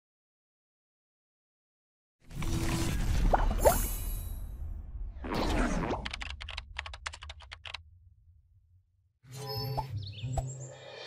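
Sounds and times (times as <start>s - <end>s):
keyboard typing clicks: 6.1s - 7.8s.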